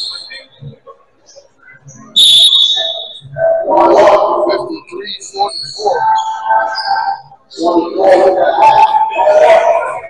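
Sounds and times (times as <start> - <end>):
referee's whistle blast: 2.2 - 3.2.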